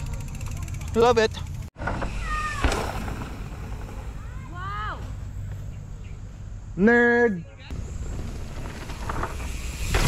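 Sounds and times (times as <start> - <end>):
bike landing thump: 1.8 - 4.3, 7.8 - 10.0.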